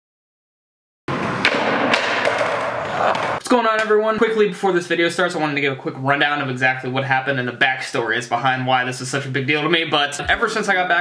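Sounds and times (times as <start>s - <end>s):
skateboard wheels rumbling on concrete: 1.1s - 3.4s
skateboard clacks: 1.1s - 3.9s.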